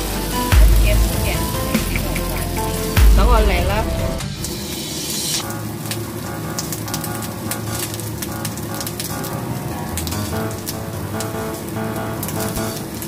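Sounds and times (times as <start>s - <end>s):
background music: 0.0s - 13.0s
food sizzling and popping in a pan: 4.3s - 13.0s.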